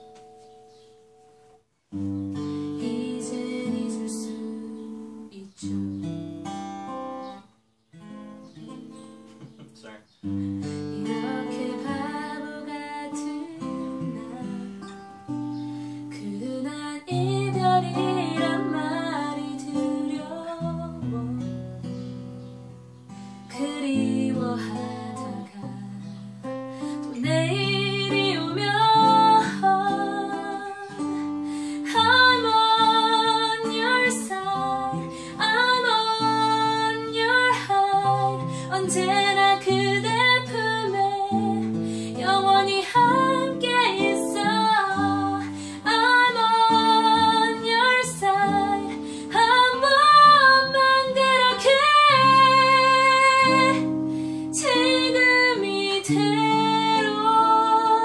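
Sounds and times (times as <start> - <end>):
strummed acoustic guitar: 0.0 - 7.4, 8.0 - 16.5, 17.1 - 58.0
woman singing: 2.7 - 6.0, 10.9 - 21.7, 23.5 - 58.0.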